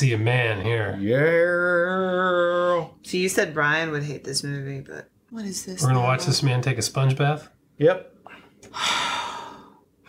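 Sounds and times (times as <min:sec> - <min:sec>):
person sighing: 0:08.3 - 0:09.8.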